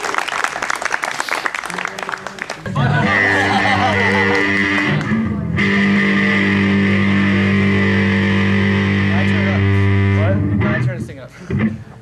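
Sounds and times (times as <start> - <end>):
electric guitar notes ringing: 2.7 - 11.9.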